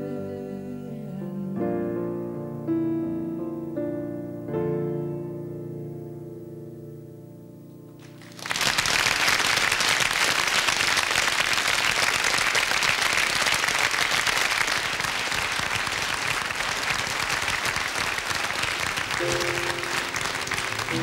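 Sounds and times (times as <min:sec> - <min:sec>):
audience applauding: 0:08.0 - 0:21.0.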